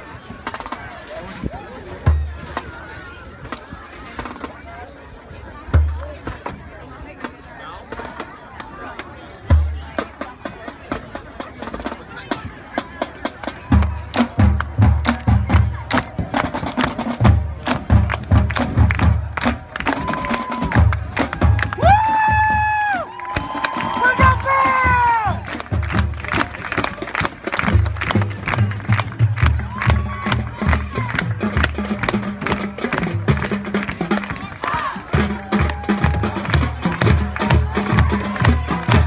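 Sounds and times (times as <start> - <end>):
crowd cheering and whooping: 19.8 - 25.4, 35.4 - 36.4.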